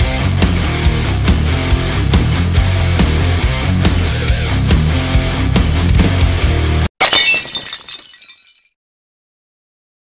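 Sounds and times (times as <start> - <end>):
glass smashing: 7.0 - 8.8.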